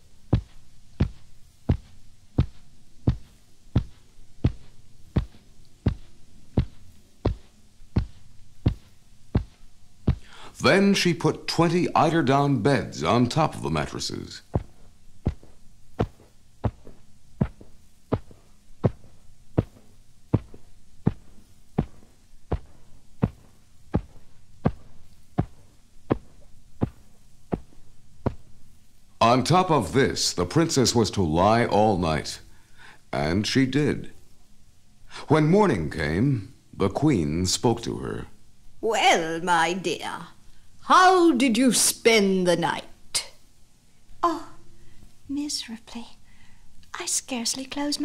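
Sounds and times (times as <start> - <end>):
low hum: 0.0 - 30.6
soft heavy thuds: 0.2 - 10.4, 14.4 - 29.0.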